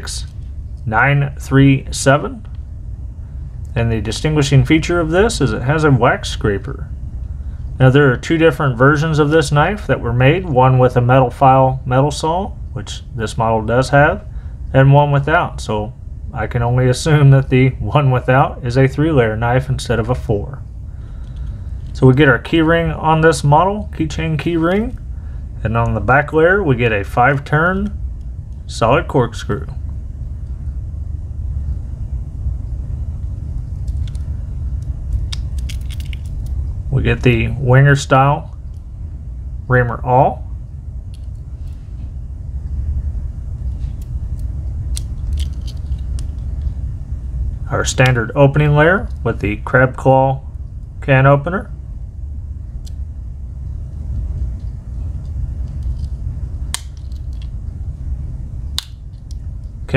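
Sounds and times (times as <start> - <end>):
low background rumble: 0.0 - 59.9.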